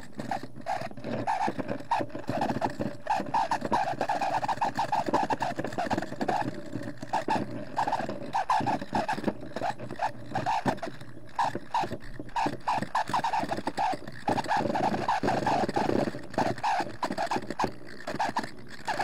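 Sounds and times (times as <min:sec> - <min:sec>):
rock squeaky scraping: 0:00.0 - 0:19.0.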